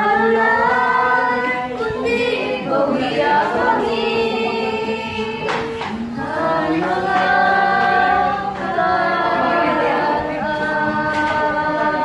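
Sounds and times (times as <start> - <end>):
children and woman singing: 0.0 - 12.0.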